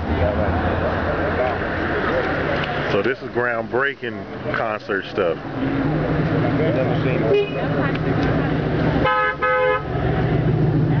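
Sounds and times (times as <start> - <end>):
car engine rumbling: 0.0 - 11.0
car horn honks: 7.3 - 7.6, 9.0 - 9.9.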